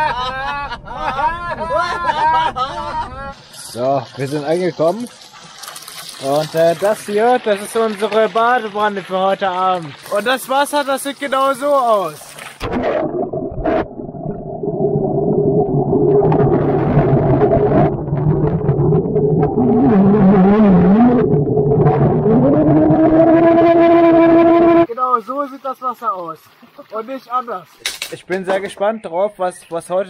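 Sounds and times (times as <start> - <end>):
muffled underwater rumble: 12.6 - 24.8
wavering voice through water: 19.4 - 24.9.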